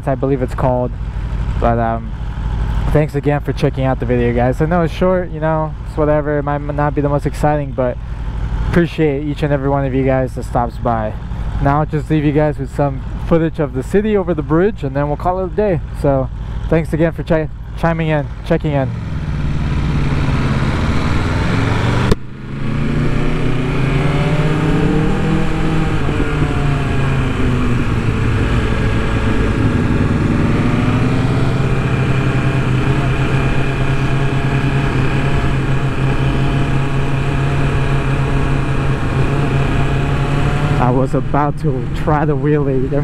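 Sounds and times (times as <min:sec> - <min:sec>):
motorcycle engine revving: 0:00.0 - 0:43.0
wind rush: 0:18.9 - 0:33.8.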